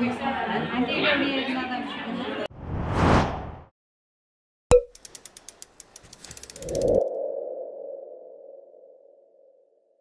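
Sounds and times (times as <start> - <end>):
sharp mechanical ticks: 4.9 - 6.9.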